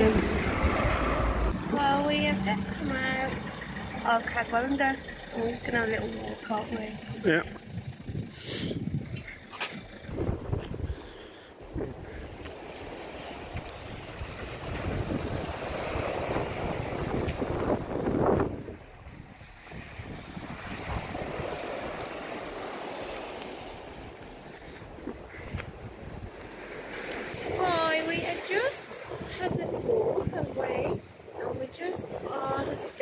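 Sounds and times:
surf on shingle beach: 0.0s - 7.5s, 8.2s - 33.0s
wind buffeting microphone: 0.0s - 33.0s.

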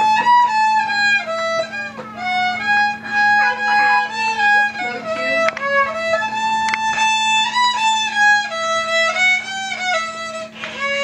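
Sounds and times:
solo violin fiddle tune: 0.0s - 11.0s.

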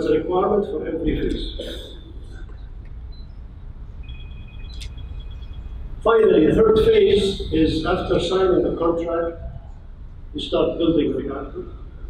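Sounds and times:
faint high steady tones: 0.0s - 12.0s.

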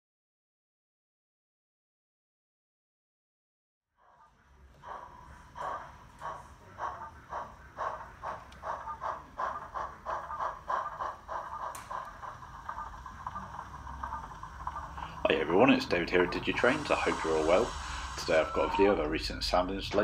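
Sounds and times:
model steam locomotive chuffs: 4.0s - 20.0s.

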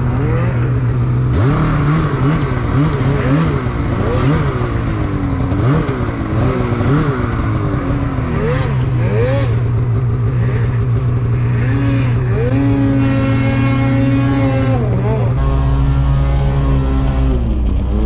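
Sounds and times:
snowmobile engine revving: 0.0s - 18.0s.

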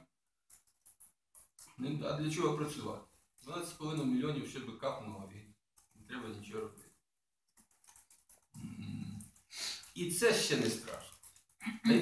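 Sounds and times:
man speaking: 6.1s - 6.8s, 9.9s - 11.1s.

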